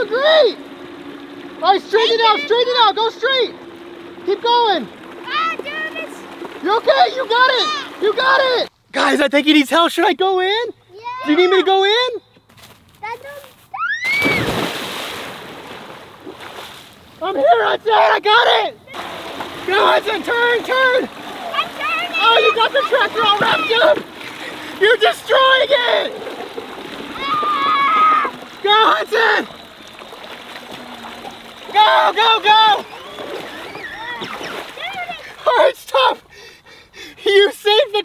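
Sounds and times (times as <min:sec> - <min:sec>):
water splashing: 0:00.0 - 0:09.9, 0:14.0 - 0:36.8
rising and falling cry: 0:13.8 - 0:14.6, 0:27.0 - 0:29.7, 0:30.6 - 0:35.5.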